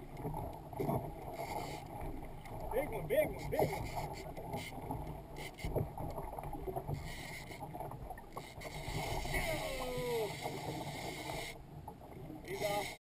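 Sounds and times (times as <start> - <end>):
water sloshing against hull: 0.0 - 13.0.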